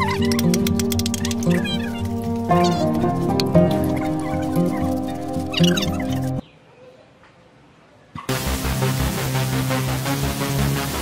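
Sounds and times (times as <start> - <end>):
background music: 0.0 - 6.4, 8.3 - 11.0.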